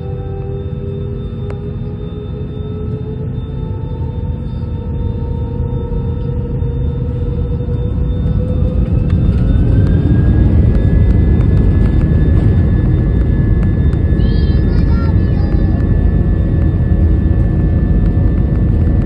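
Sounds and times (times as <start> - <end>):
jet engines spooling up: 0.0 - 19.0.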